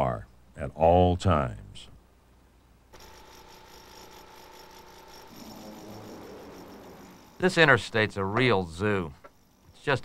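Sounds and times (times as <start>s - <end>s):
thin hum: 2.5s - 9.8s.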